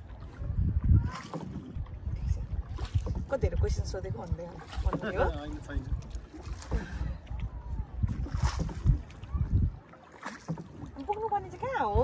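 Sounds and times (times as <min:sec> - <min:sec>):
wind buffeting microphone: 0:00.0 - 0:10.0, 0:10.6 - 0:12.0.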